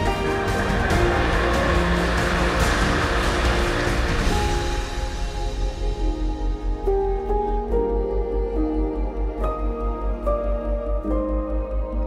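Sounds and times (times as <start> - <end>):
people applauding: 0.0 - 4.8
soft background music: 0.0 - 12.0.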